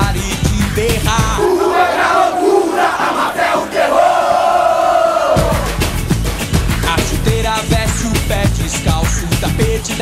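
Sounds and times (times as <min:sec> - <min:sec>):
crowd chanting in a pop-rock song: 0:00.0 - 0:05.8.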